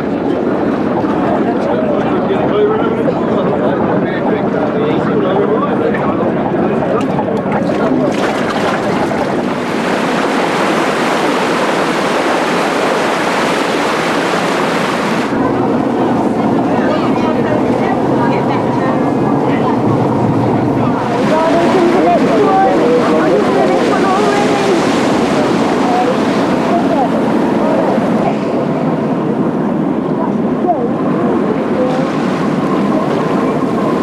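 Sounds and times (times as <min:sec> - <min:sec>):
water rushing in a ship's wake: 0:00.0 - 0:34.0
wind on microphone: 0:00.0 - 0:34.0.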